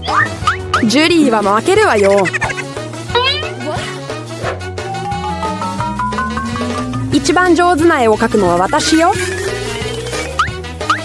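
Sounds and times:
background music with steady beat: 0:00.0 - 0:11.0
squeaky rising tone: 0:02.0 - 0:11.0
quick upward chirps: 0:04.7 - 0:11.0.

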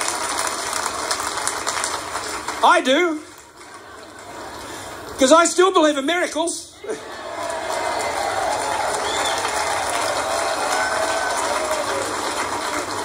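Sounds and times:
crowd applauding through speaker: 0:00.0 - 0:05.2, 0:06.9 - 0:13.0.

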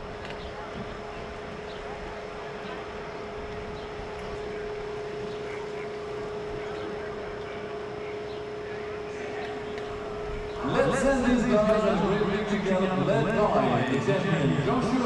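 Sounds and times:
constant background noise: 0:00.0 - 0:15.0
faint indistinct voices: 0:00.0 - 0:15.0
steady hum: 0:00.0 - 0:15.0.

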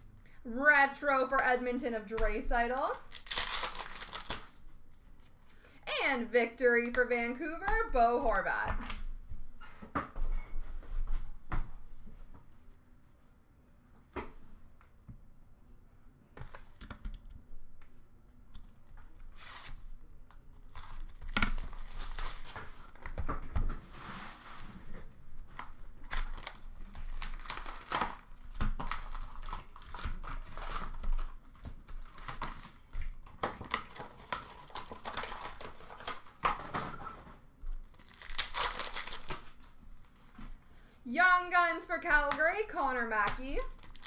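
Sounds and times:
card packs tearing and crinkling: 0:02.8 - 0:04.6, 0:20.6 - 0:23.0, 0:26.1 - 0:36.4, 0:37.8 - 0:40.1, 0:43.4 - 0:44.0.

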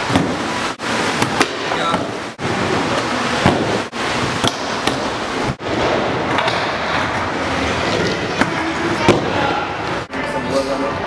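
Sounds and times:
skateboard wheels rolling on wood: 0:02.0 - 0:10.0
skateboard clack: 0:04.4 - 0:09.6.

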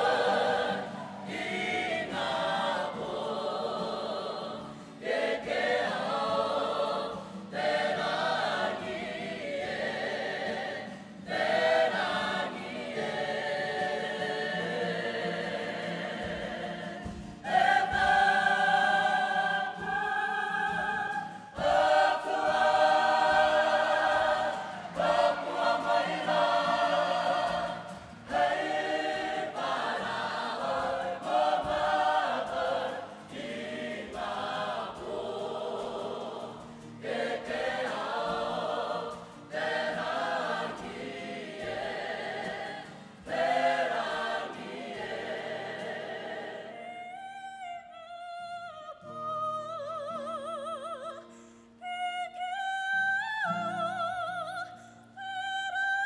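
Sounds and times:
men and women singing as choir: 0:00.0 - 0:48.0.

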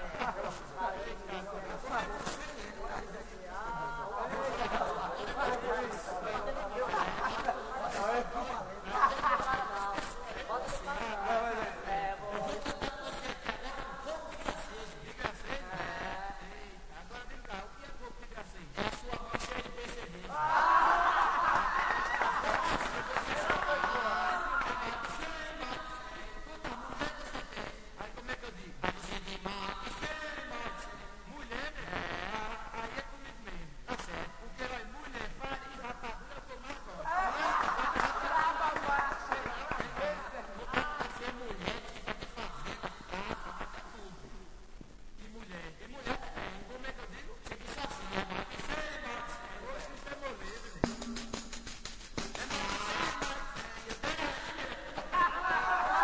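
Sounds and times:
man chanting rapid verses: 0:00.0 - 0:44.4, 0:45.2 - 0:51.4, 0:52.2 - 0:56.0.

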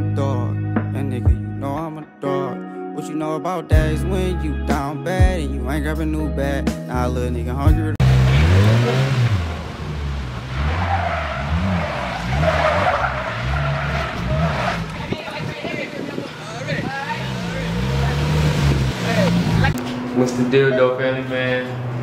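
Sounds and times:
engine revving: 0:08.0 - 0:22.0
tyres squealing on pavement: 0:08.2 - 0:21.8.

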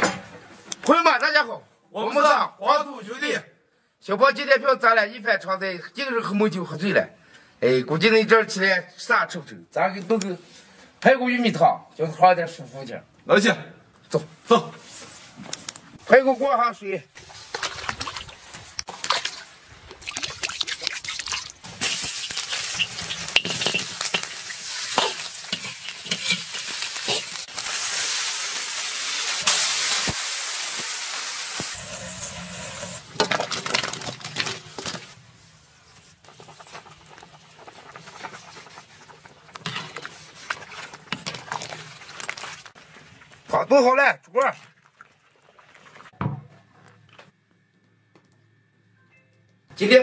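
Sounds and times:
loud hissing sizzle: 0:21.6 - 0:33.1
utensils clacking on wok: 0:21.8 - 0:27.5
soup simmering: 0:36.2 - 0:43.5.

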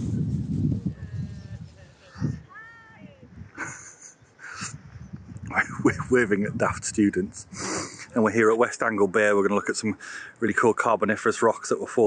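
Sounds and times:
gusty wind on microphone: 0:00.0 - 0:08.6.

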